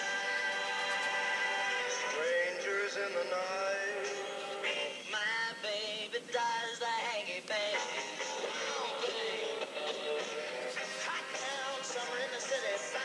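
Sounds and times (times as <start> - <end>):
pop song with vocals: 0.0 - 13.0.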